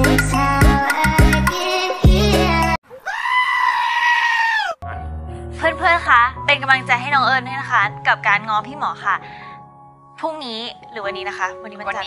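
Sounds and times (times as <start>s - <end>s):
beat-driven dance music: 0.0s - 2.8s
goat bleat: 3.0s - 4.8s
person speaking over music: 4.8s - 9.2s, 10.2s - 12.0s.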